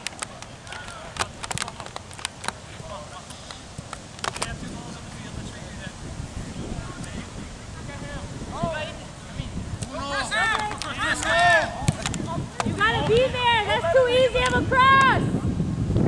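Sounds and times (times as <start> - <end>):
wind rumble on microphone: 0.0 - 16.0
players shouting: 9.9 - 15.3.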